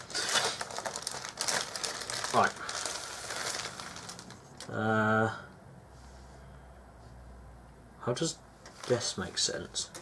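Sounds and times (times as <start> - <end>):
plastic bag crinkling: 0.0 - 4.7, 8.7 - 9.2.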